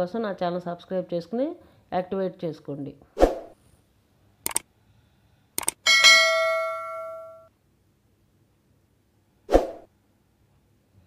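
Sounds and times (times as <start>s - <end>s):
short clicks: 4.4s - 4.6s, 5.6s - 5.8s
bright bell ding: 5.9s - 7.5s.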